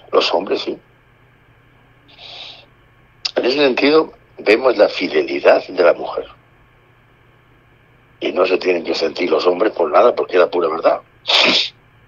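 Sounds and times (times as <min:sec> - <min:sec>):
man's intake of breath: 0:02.1 - 0:02.7.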